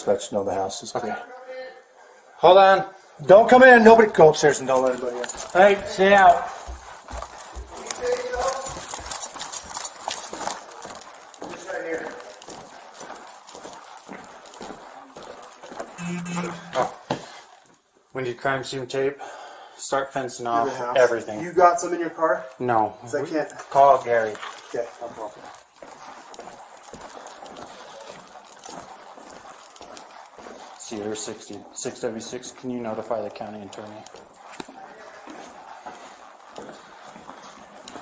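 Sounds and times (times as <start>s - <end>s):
rustle of clothing and gear: 3.1s - 17.8s, 20.5s - 38.0s
footsteps on hardwood floor: 4.8s - 17.3s, 34.1s - 38.0s.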